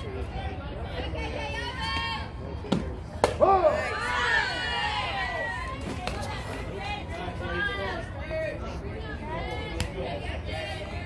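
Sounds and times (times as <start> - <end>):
people yelling: 3.3 - 5.8.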